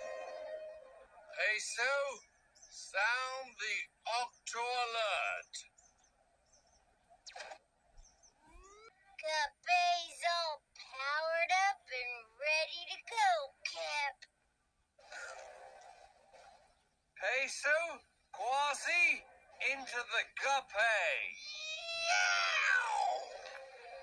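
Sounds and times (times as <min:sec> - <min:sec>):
cartoon character voices: 0:09.2 - 0:14.2, 0:17.2 - 0:23.6.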